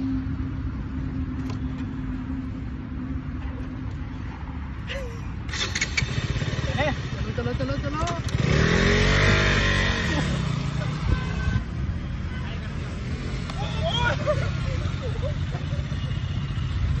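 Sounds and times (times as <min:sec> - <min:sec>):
voices: 0:04.9 - 0:16.7
motorcycle engine revving: 0:05.5 - 0:11.6.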